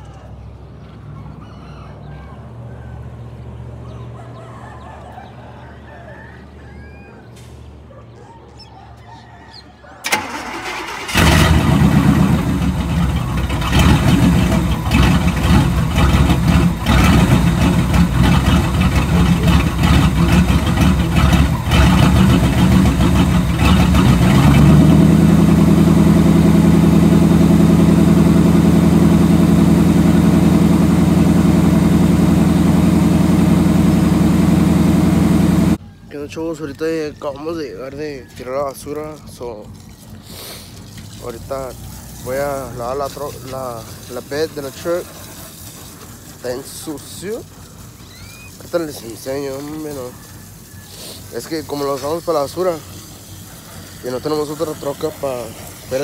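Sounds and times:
truck engine starting and idling: 0:03.3 - 0:56.0.

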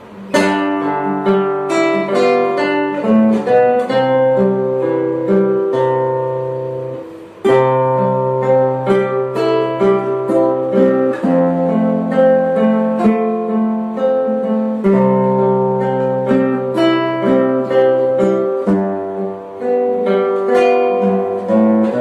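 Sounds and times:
classical guitar duet: 0:00.0 - 0:22.0.

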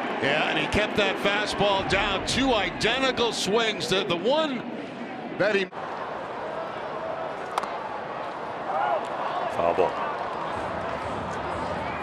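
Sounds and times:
ballpark crowd noise: 0:00.0 - 0:12.0.

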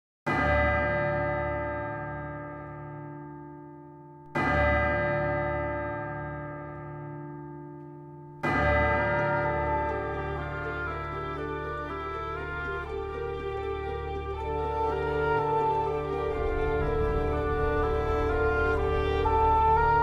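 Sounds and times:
deep bell tolling: 0:00.3 - 0:20.0.

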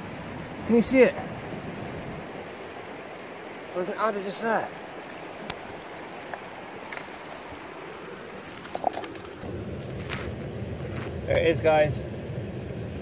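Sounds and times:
river rushing: 0:00.0 - 0:11.8
low rumble: 0:09.4 - 0:13.0.

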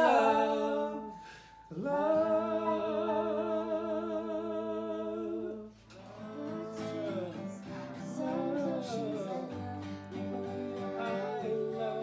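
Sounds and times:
person humming: 0:00.0 - 0:12.0.

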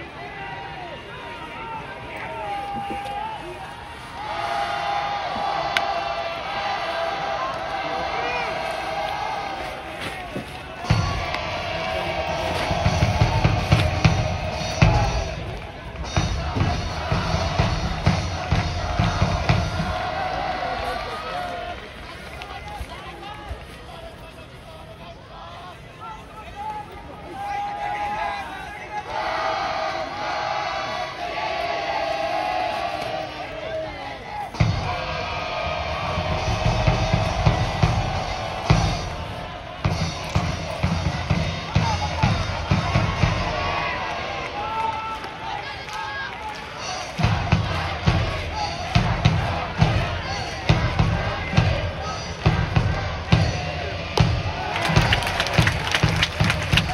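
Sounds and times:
voices shouting: 0:00.0 - 0:24.1, 0:24.7 - 0:56.9.

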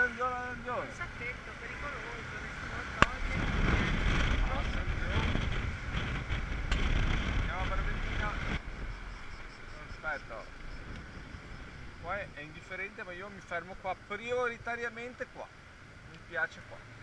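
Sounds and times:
wind noise on microphone: 0:02.7 - 0:12.7.

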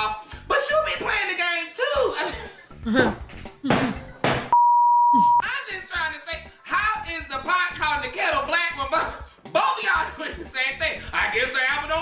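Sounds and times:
speech: 0:00.0 - 0:02.4, 0:05.4 - 0:12.0
laughter: 0:02.2 - 0:03.0
censor bleep: 0:04.5 - 0:05.4.

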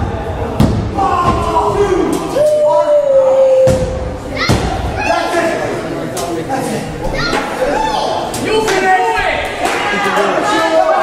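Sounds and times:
people shouting: 0:00.0 - 0:05.8, 0:07.1 - 0:11.0.

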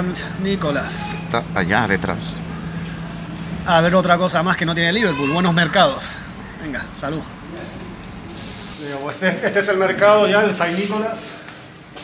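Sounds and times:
short sharp hiss: 0:08.3 - 0:09.0.

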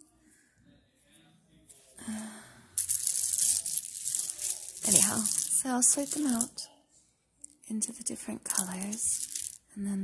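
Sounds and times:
buttons rattling and rustling: 0:02.8 - 0:06.5, 0:08.5 - 0:09.6.

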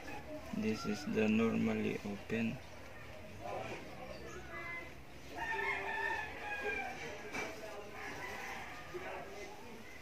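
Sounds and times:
rooster crowing: 0:05.4 - 0:07.1.

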